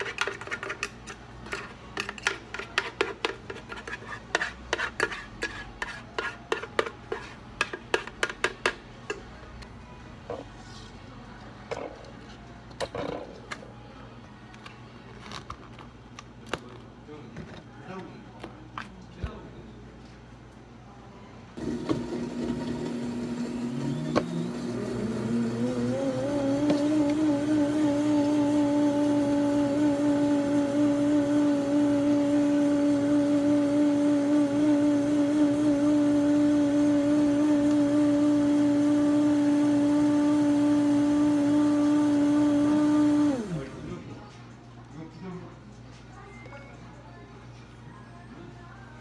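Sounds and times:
electric blender motor: 21.6 - 44.0.

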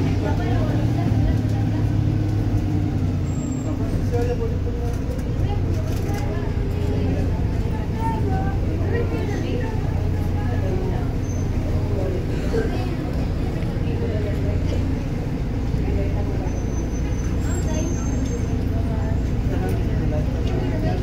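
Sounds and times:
bus engine drone: 0.0 - 21.0
road noise: 0.0 - 21.0.

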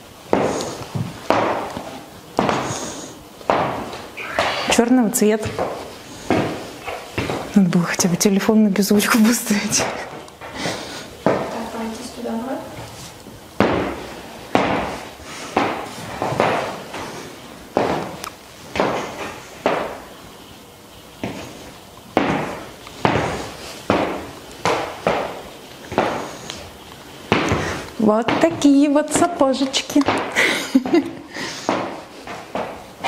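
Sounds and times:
heels clicking on hard floor: 0.0 - 8.0, 11.2 - 11.6, 12.7 - 17.1, 17.7 - 20.2, 21.2 - 33.0.

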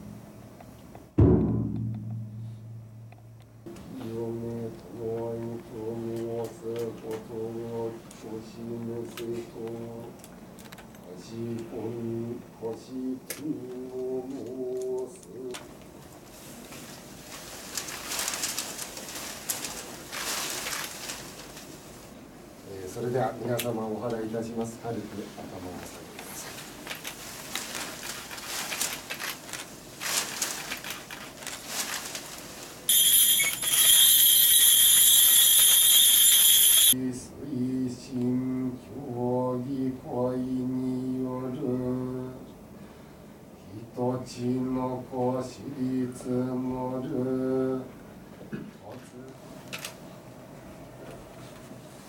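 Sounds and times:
man chanting prayer: 3.7 - 10.2, 11.1 - 15.7, 22.6 - 26.6, 36.9 - 42.5, 43.6 - 48.0, 48.8 - 49.4
paper streamers swishing: 16.2 - 22.2, 26.0 - 37.0.

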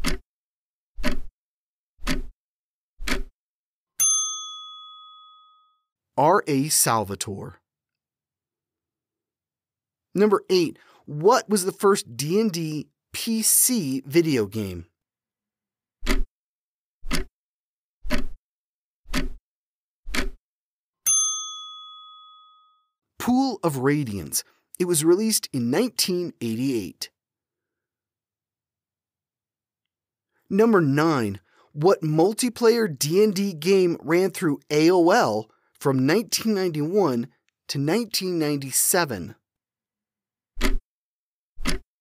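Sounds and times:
timer ticking: 0.0 - 0.2, 1.0 - 1.3, 2.0 - 2.3, 3.0 - 3.3, 16.0 - 16.3, 17.1 - 17.3, 18.1 - 18.4, 19.1 - 19.4, 20.1 - 20.4
bell ding: 4.0 - 5.9, 21.0 - 22.9.

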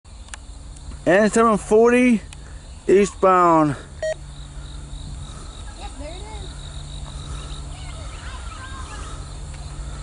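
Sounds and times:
insects buzzing: 0.1 - 10.0
brief beep: 4.0 - 4.2.

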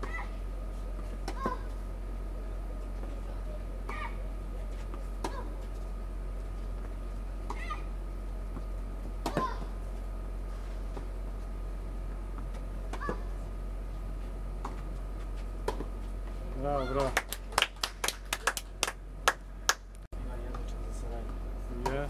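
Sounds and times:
steady low hum: 0.0 - 22.0
racket hitting tennis ball: 1.0 - 1.8, 4.8 - 5.8, 6.8 - 7.9, 8.5 - 9.8, 12.4 - 13.4, 15.6 - 16.0.

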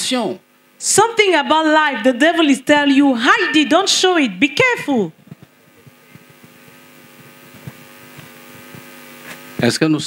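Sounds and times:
electrical hum from sound system: 0.0 - 10.0.

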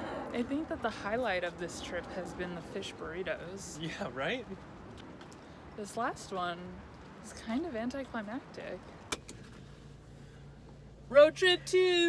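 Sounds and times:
faint low hum in car cabin: 8.6 - 12.0.

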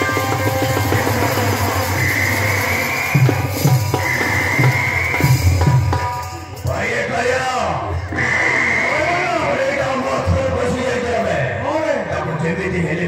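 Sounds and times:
fast drumming: 0.0 - 7.0.

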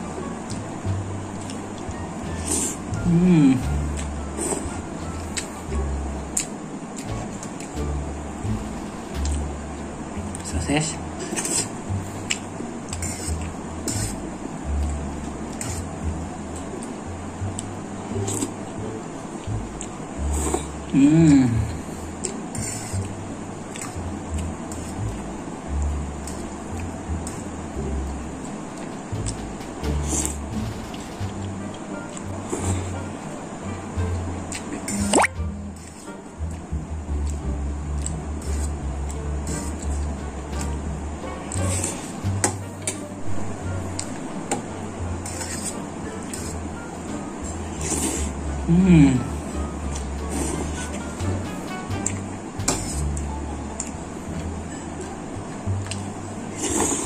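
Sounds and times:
background music with pulsing bass: 0.0 - 6.4, 7.0 - 28.4, 29.0 - 56.4
mouth sounds of eating: 0.0 - 33.1, 33.7 - 43.0, 47.5 - 57.0
fork scraping a food tray: 12.9 - 14.2, 22.5 - 23.1, 38.4 - 38.8, 45.2 - 46.6, 52.6 - 53.2.

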